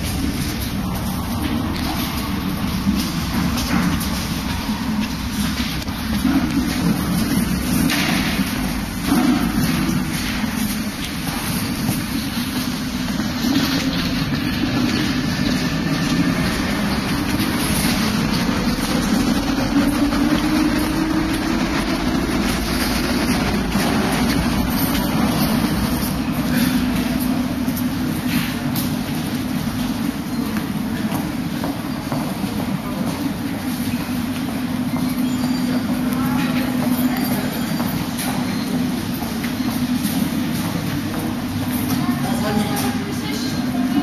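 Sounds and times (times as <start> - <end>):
escalator machinery rumble: 0.0 - 44.0.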